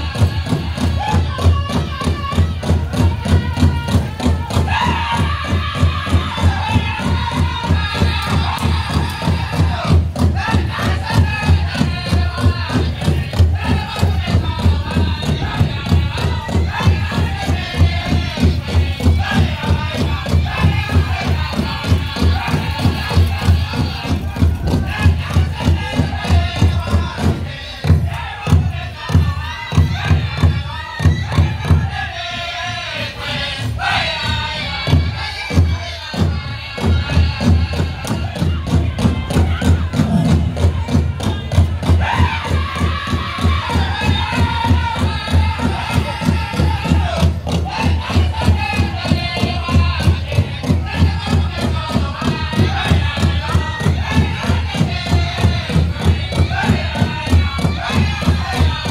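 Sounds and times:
big drum steady beat: 0.0s - 32.0s, 33.3s - 58.9s
high-pitched group singing: 0.0s - 58.9s.

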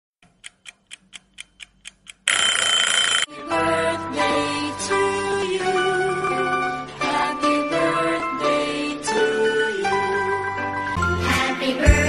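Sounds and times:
clock ticking: 0.2s - 3.2s
alarm clock bell ringing: 2.3s - 3.3s.

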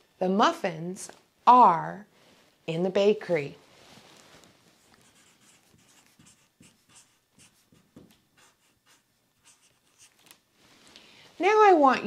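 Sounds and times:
marker writing on whiteboard: 4.8s - 10.2s.

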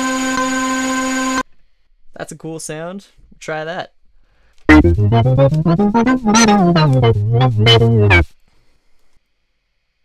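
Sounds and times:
synth lead held note: 4.7s - 8.2s.

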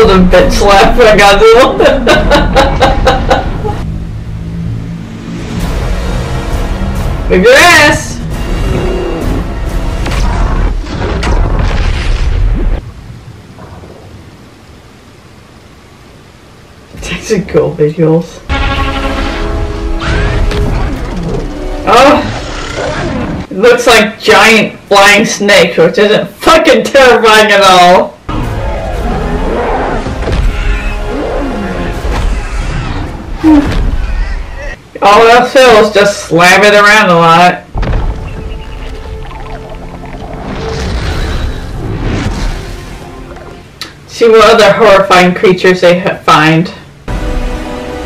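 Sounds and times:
background music: 0.0s - 11.6s, 18.5s - 23.5s, 28.3s - 33.5s, 37.8s - 44.1s, 47.1s - 48.0s
loud deep rumble: 2.4s - 7.5s
steady low wash of sound: 3.6s - 7.3s.

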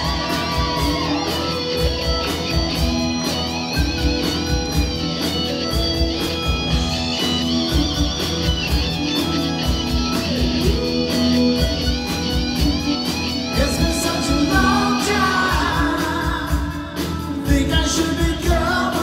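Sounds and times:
bass guitar: 0.0s - 19.0s
electric guitars: 0.0s - 19.0s
steady drum beat: 0.0s - 19.0s.

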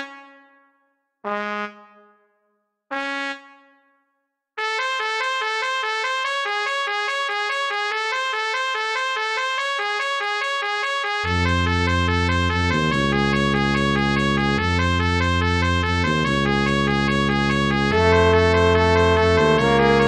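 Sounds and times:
trumpet fast repeated notes: 4.6s - 20.0s
trumpets playing short notes: 17.9s - 20.0s.

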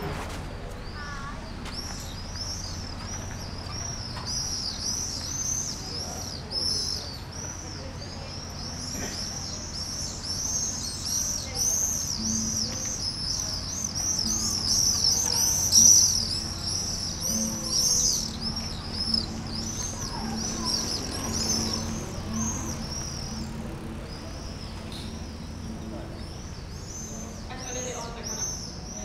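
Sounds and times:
flock of birds chirping: 0.0s - 29.0s.

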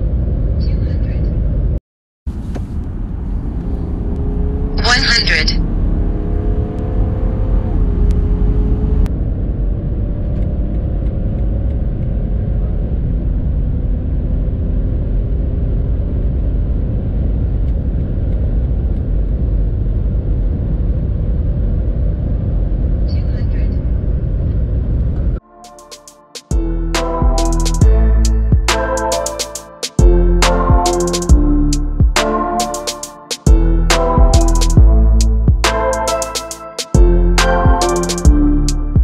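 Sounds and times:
diesel engine accelerating: 1.4s - 23.1s, 23.7s - 39.0s.

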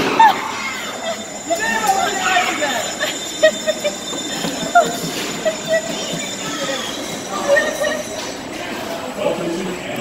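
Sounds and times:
riders laughing: 0.0s - 8.1s
amusement ride rattling rumble: 0.2s - 9.1s.

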